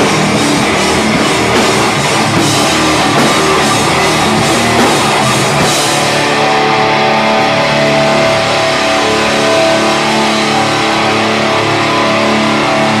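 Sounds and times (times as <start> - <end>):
drum hits: 0.0 - 6.3
distorted electric guitars: 0.0 - 13.0.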